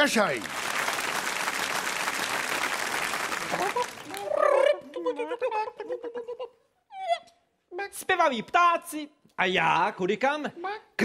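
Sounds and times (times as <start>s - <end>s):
audience applause: 0.0s - 4.6s.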